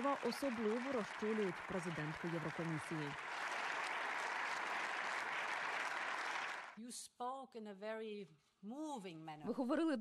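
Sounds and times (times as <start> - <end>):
audience applause: 0.0 - 6.8.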